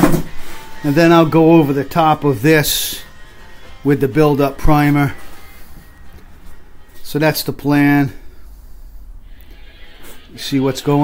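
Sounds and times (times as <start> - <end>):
man's voice: 0.8 - 3.1, 3.8 - 5.2, 10.3 - 11.0.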